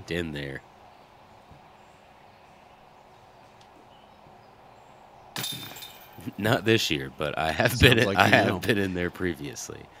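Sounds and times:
faint outdoor ambience: 0.0 - 10.0
disc hitting metal chains: 5.4 - 6.2.

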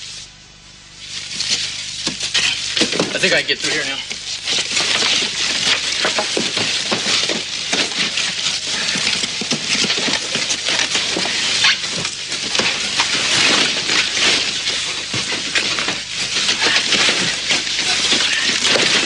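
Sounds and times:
person crawling through rubble: 1.0 - 19.0
wooden rubble crackling and rustling: 1.0 - 19.0.

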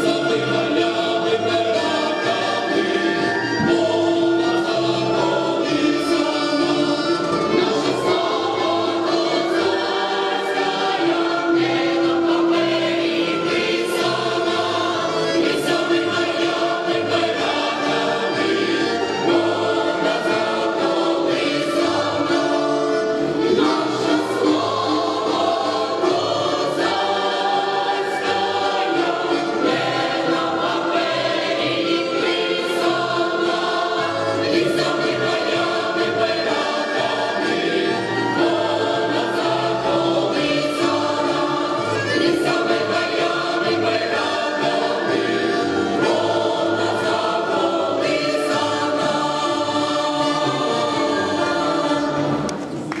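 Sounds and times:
button accordion: 0.0 - 52.9
mixed choir singing in harmony: 0.0 - 53.0.

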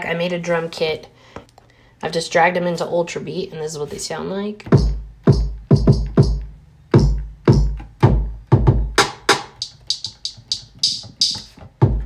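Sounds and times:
booming kick drums: 4.7 - 6.4, 7.0 - 9.1.

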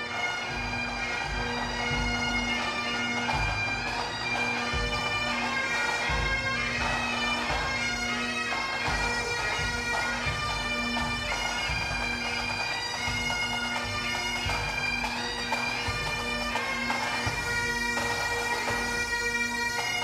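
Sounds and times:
bagpipes playing marching tune: 0.0 - 20.0
drum beats: 0.4 - 20.0.

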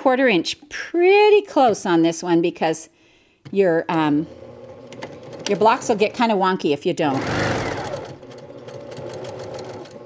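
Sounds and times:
sewing machine motor hum: 4.2 - 10.0.

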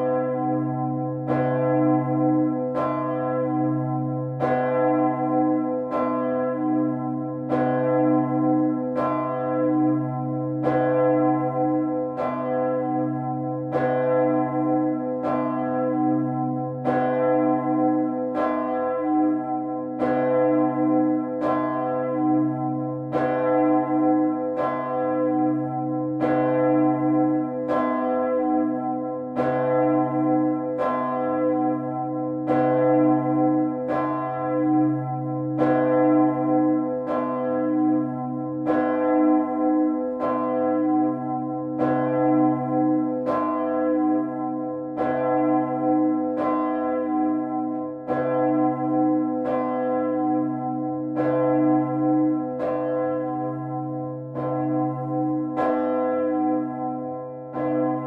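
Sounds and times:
church bells pealing: 0.0 - 58.0.

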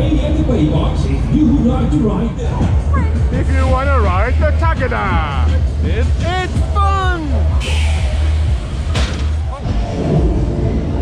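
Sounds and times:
bass-heavy fairground music: 0.0 - 11.0
crowd voices: 0.0 - 11.0.

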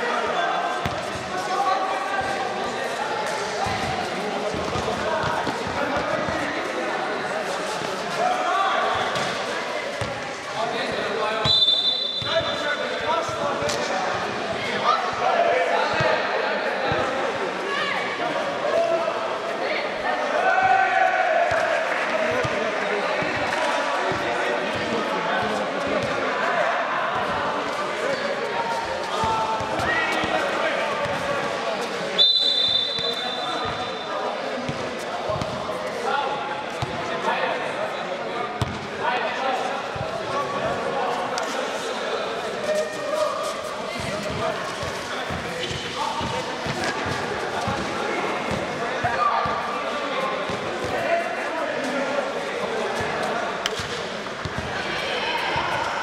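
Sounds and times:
basketball bouncing on court floor: 38.6 - 38.8, 54.4 - 54.7.

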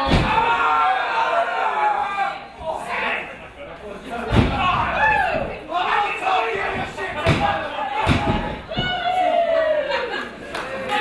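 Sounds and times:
people shouting: 0.0 - 3.2, 4.4 - 10.2.

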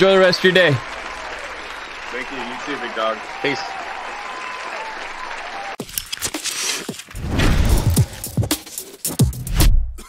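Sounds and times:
crowd applauding: 0.0 - 5.8.

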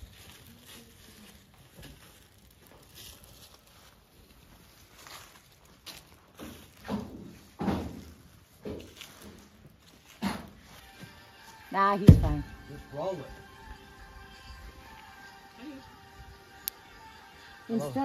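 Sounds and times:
tree trunk thudding on ground: 6.8 - 9.0, 12.1 - 12.4.

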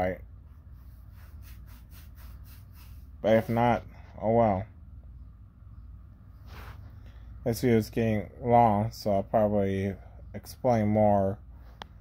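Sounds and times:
steady low hum: 0.0 - 12.0
hand scratching over hair: 0.7 - 3.8.

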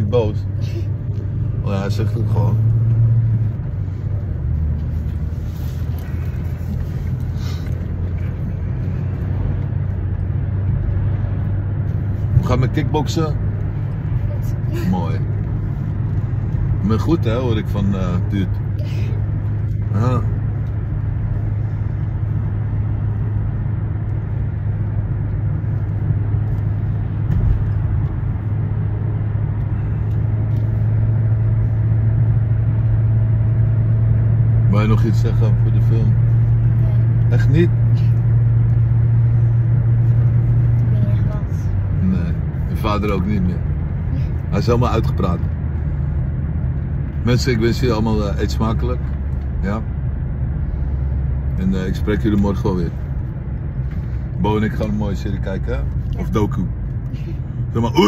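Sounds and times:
car engine drone: 0.0 - 58.0
road noise: 0.0 - 58.0.

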